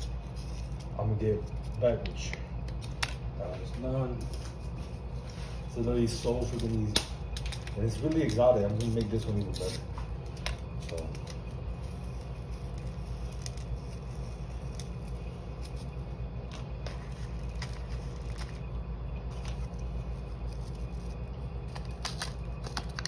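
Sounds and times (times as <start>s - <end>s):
steady low hum: 0.0s - 23.0s
seasoning packet clicks and rustles: 21.6s - 23.0s.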